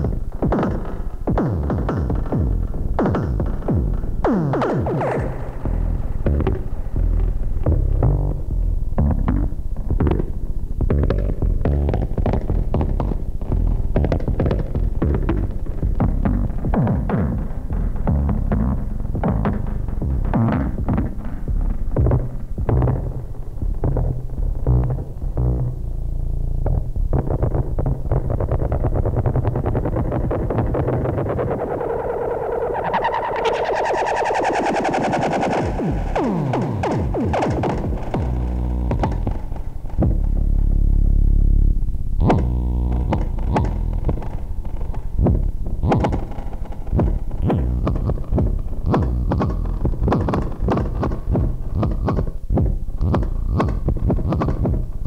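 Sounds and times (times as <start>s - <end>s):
deep held bass note: 5.1s - 10.3s, 23.8s - 27.4s, 32.7s - 44.4s, 47.0s - 50.0s
bright filter sweep: 30.3s - 50.4s
electronic drum hits: 33.0s - 40.4s.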